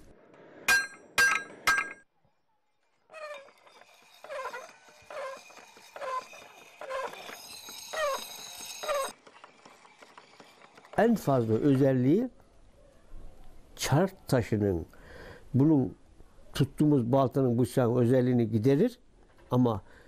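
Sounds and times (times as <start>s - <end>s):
hammer striking iron on anvil: 0.7s - 2.0s.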